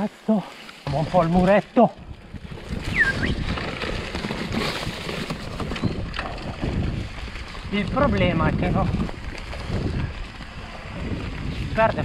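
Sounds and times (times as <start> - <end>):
bike tyres rumbling over leaves and stones: 0.0 - 12.0.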